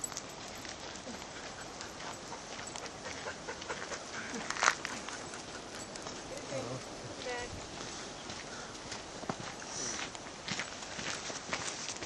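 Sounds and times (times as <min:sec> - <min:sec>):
footsteps on gravel: 0:00.0 - 0:12.0.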